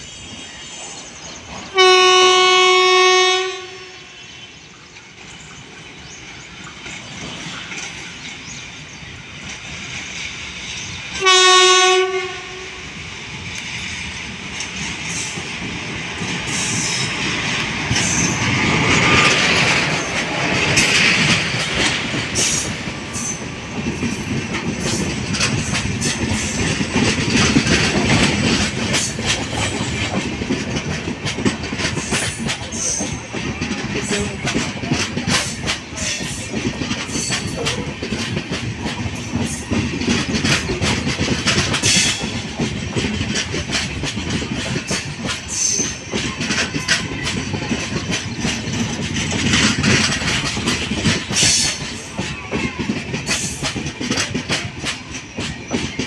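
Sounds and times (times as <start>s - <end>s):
train horn blast: 1.7s - 4.4s, 11.2s - 13.0s
train wheels clicking over rails: 3.3s - 56.0s.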